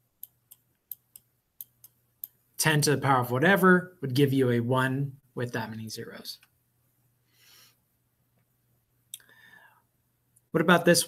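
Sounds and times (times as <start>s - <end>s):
man breathing: 7.2s - 7.8s, 9.2s - 10.0s.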